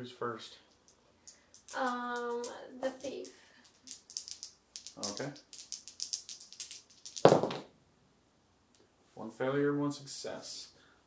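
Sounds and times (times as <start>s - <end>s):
dice rattling in hand: 0.7s - 7.6s
dice clattering on table: 0.8s - 7.7s.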